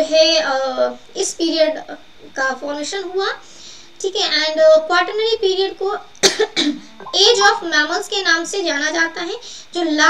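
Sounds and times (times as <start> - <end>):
woman talking: 0.0 - 3.4, 4.0 - 6.1, 6.9 - 10.0
loud cough: 6.2 - 6.8.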